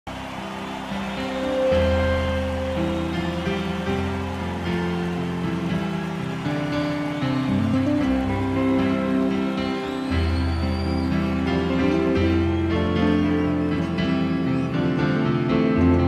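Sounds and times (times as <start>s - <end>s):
music of sustained chords: 0.1s - 16.0s.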